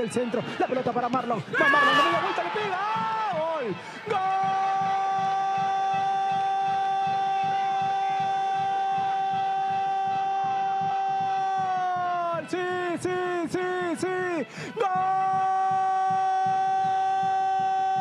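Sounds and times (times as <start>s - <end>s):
commentator shouting goal: 0.0s - 18.0s.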